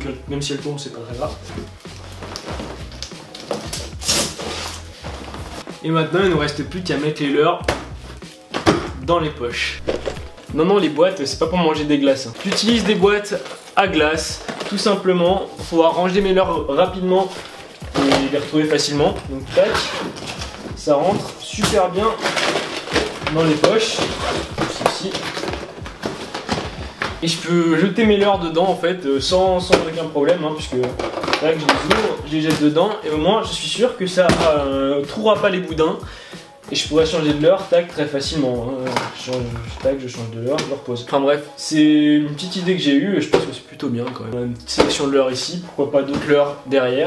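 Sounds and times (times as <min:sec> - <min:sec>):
fabric rustling: 0:01.1 - 0:05.7
scrape: 0:04.0 - 0:05.6
plastic tubs knocking: 0:07.6 - 0:09.1, 0:09.8 - 0:10.6, 0:17.8 - 0:27.4, 0:29.4 - 0:34.8, 0:38.7 - 0:40.8, 0:44.6 - 0:45.1.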